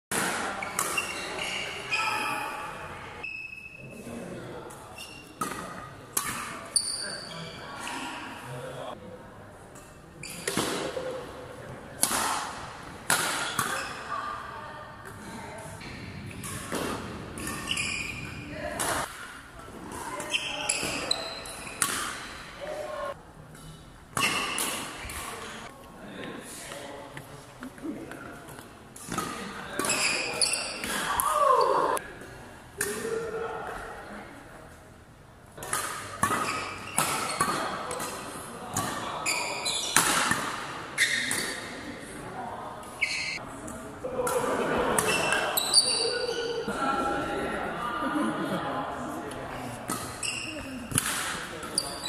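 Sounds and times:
shoe squeaks: 0.6 - 4.0, 4.9 - 5.4, 6.7 - 8.0, 10.2 - 10.6, 13.4 - 14.1, 17.4 - 18.5, 20.1 - 22.4, 29.8 - 30.9, 39.2 - 40.2, 41.0 - 41.6, 42.9 - 43.4, 45.1 - 46.7, 50.0 - 51.0, 51.6 - 52.0
racket striking shuttlecock: 12.0 - 13.8
voices: 35.6 - 52.0.

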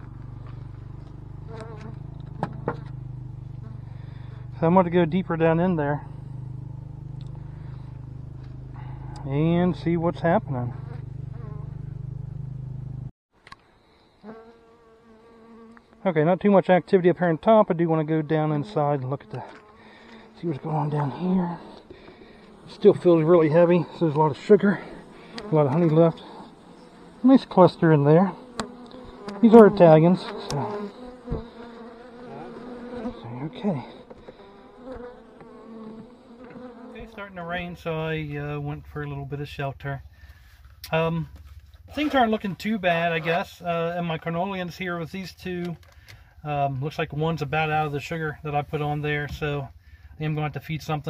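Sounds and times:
honey bees buzzing: 0.0 - 13.1, 13.8 - 39.2
steady low hum: 0.0 - 13.1, 16.3 - 51.0.

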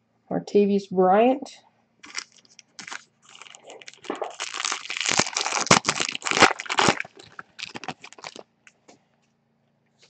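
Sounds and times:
shiny wrapper tearing and crinkling: 2.0 - 8.4.

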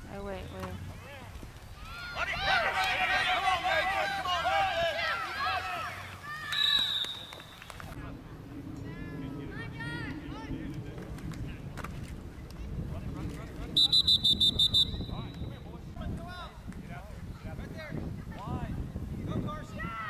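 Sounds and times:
referee's whistle blasts: 6.5 - 7.6, 13.8 - 15.5.

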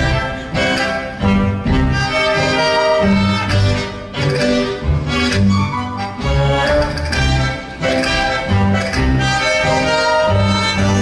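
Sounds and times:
orchestra playing dance tune: 0.0 - 11.0.

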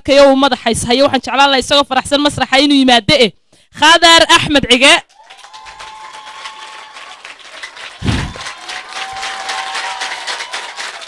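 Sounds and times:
audience applauding: 5.1 - 11.0.

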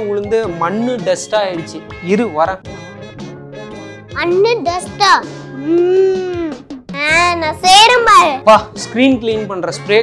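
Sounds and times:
light background music: 0.0 - 10.0
child speaking in sing-song voice: 4.2 - 8.5.

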